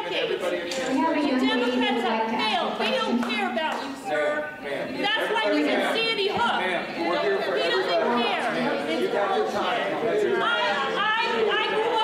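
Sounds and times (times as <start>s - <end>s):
woman speaking heatedly: 0.0s - 4.0s, 5.0s - 6.7s, 10.4s - 12.0s
several voices talking: 0.0s - 12.0s.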